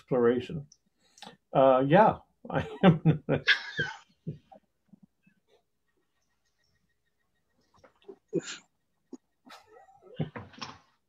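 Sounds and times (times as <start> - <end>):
person laughing: 2.5 - 4.6.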